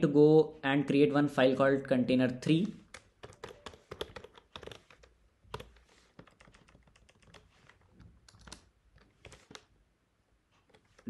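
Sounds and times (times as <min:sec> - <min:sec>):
computer keyboard typing: 0:02.8 - 0:09.7, 0:10.6 - 0:11.0.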